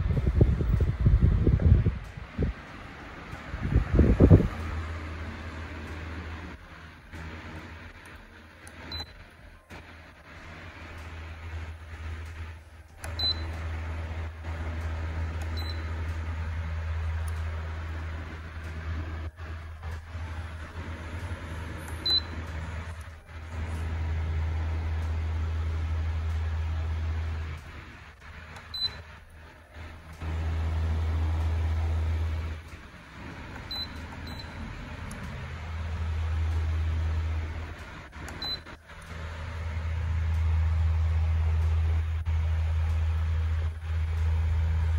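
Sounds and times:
fan blowing air: 0:00.0 - 0:44.9
short high beeps: 0:13.1 - 0:13.6, 0:15.6 - 0:15.9, 0:22.0 - 0:22.4, 0:33.7 - 0:34.6.

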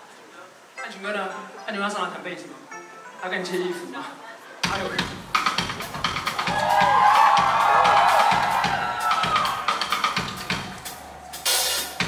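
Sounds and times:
drum kit playing steady beat: 0:04.6 - 0:12.0.

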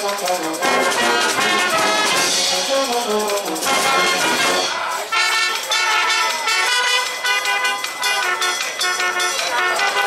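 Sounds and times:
brass band playing short chords: 0:00.0 - 0:10.0.

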